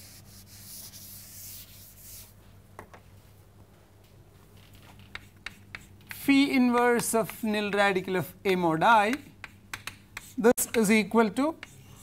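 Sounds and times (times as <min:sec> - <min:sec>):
duster rubbing on chalkboard: 0:00.0 - 0:02.3.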